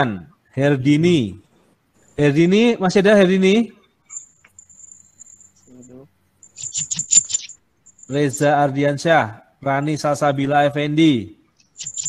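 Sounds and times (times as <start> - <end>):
high thin chirping trill: 4.1 - 8.5, 11.6 - 12.0
sharp clicks: 6.4 - 8.2.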